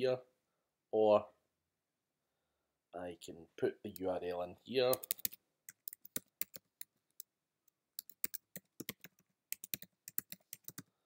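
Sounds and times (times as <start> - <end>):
keyboard typing clicks: 4.9 - 6.9, 8.0 - 10.9.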